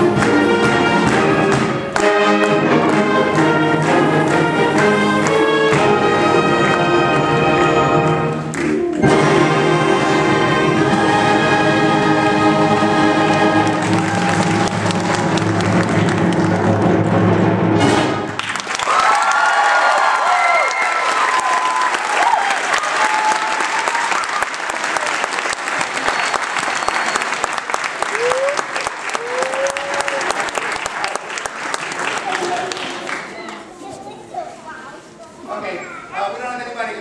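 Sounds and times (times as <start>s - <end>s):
band holding chord with brass: 0.0s - 18.4s
audience applause: 8.1s - 9.1s, 13.2s - 16.9s, 18.3s - 33.7s
shouted cheers: 13.8s - 15.0s, 18.7s - 24.6s, 28.0s - 31.2s.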